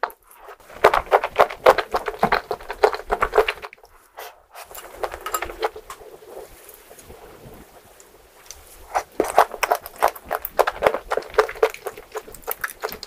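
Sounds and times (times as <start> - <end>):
wet chewing clicks and smacks: 0.0 - 4.0, 8.5 - 13.0.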